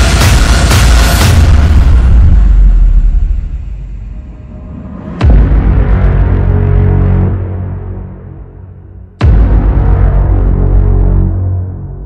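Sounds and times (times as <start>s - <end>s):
deep booming hits: 0.0s - 12.0s
low rumble: 1.2s - 12.0s.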